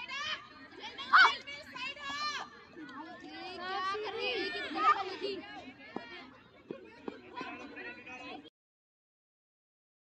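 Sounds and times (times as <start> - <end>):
girls shouting and cheering: 0.0 - 6.3.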